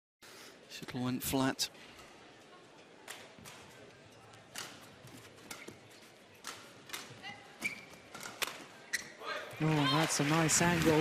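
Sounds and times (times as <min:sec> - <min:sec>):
shoes squeaking on court floor: 0:03.8 - 0:09.6.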